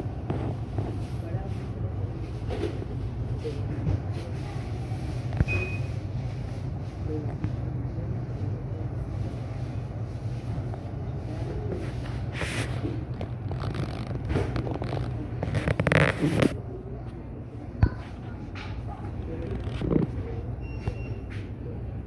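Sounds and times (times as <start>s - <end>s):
faint indistinct voices: 0.0s - 22.0s
store interior droning noise: 0.0s - 22.0s.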